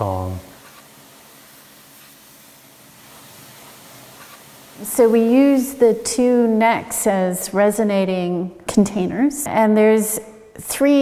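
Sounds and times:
pressure washer spraying water: 0.0s - 7.4s.

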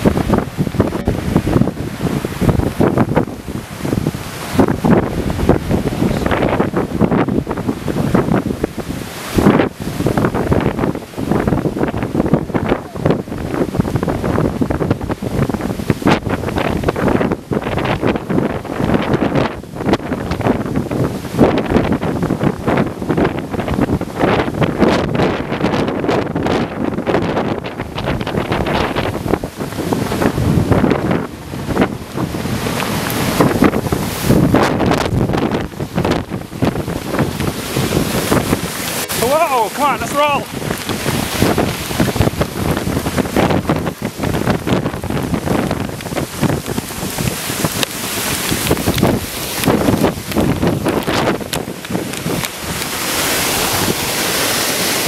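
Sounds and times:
gusty wind buffeting microphone: 0.0s - 55.0s.

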